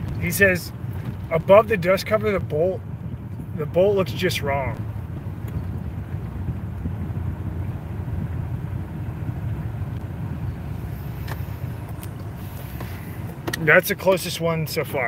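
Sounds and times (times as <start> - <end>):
car cabin rumble: 0.0 - 15.0.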